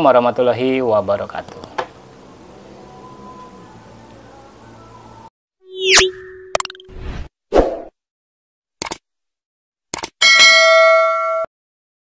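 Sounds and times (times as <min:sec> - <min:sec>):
rising pop-whoosh: 0:05.7 - 0:07.9
quick clicks: 0:08.8 - 0:09.0, 0:09.9 - 0:10.2.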